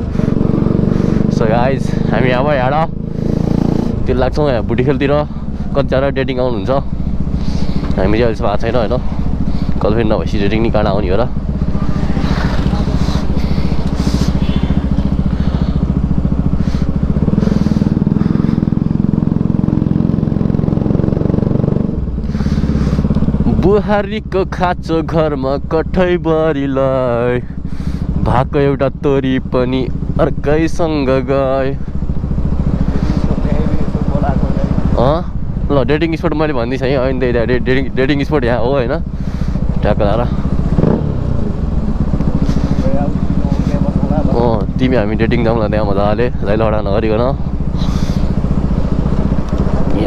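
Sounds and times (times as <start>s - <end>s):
motorcycle engine running: 0.0s - 50.0s
breathy hiss: 22.2s - 23.2s.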